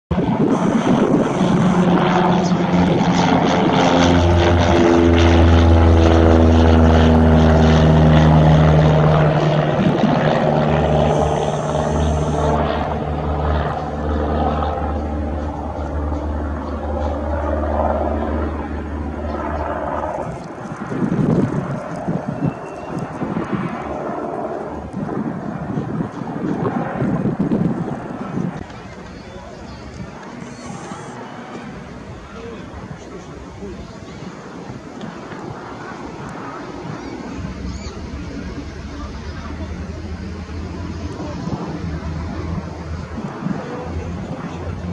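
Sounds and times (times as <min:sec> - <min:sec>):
propeller plane flying overhead: 0:00.1 - 0:44.9.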